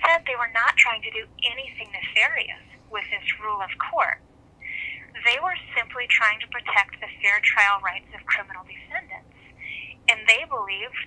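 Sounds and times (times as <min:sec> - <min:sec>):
speech over telephone: 0:00.0 - 0:04.2, 0:05.2 - 0:11.0.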